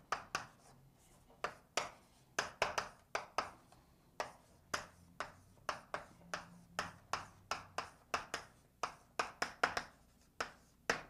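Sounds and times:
chalk tapping on blackboard: 0.0 - 11.0.

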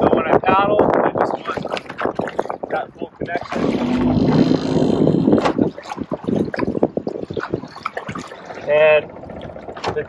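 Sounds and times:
wind on microphone: 0.0 - 10.0
paddle splashing in water: 1.4 - 10.0.

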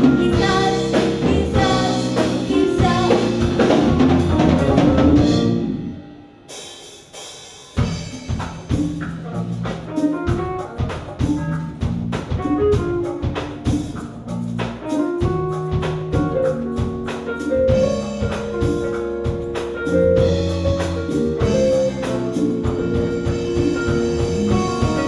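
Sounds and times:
drum kit: 0.0 - 25.0
electric keyboard chords: 0.0 - 25.0.

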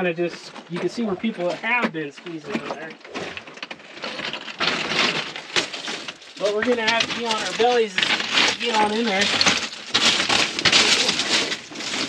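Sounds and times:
broken rock crunching and clattering: 2.2 - 12.0.

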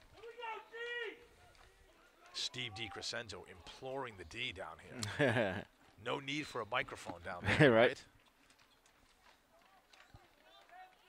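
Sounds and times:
distant voices shouting: 0.0 - 4.2.

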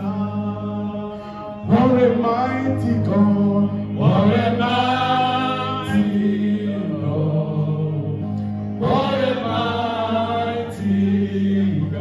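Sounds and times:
voices singing gospel: 0.0 - 12.0.

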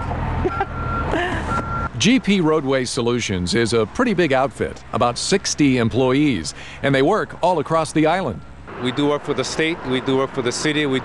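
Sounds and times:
reversing alarm beeping: 0.5 - 1.9.

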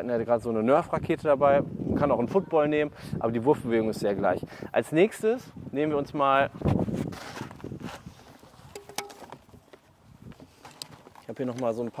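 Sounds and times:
soft footsteps on clay court: 6.6 - 12.0.

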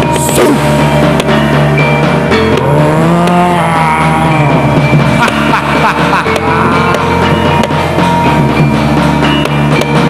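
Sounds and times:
steady low bass: 0.0 - 10.0.

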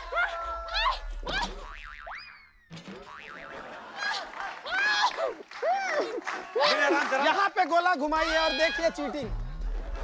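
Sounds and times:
wobbling boing: 1.5 - 3.5
music: 8.1 - 10.0.

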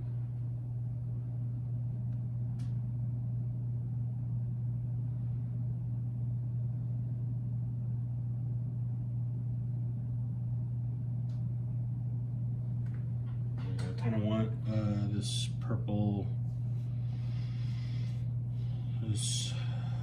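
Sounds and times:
low electrical hum: 0.0 - 20.0.

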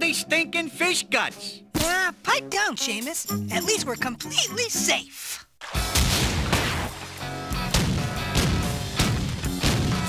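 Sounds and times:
sharp booming hits: 5.8 - 7.0, 7.6 - 10.0.

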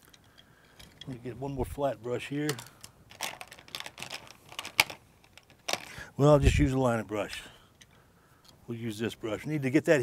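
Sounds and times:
paintbrushes clattering: 2.4 - 6.0.

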